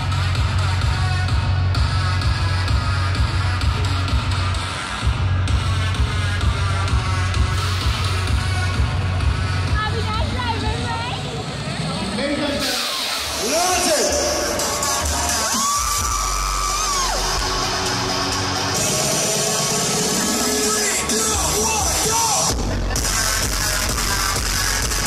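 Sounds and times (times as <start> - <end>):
crowd talking and cheering: 0.0 - 25.0
dance music with steady beat: 0.0 - 25.0
whoops: 14.6 - 17.8.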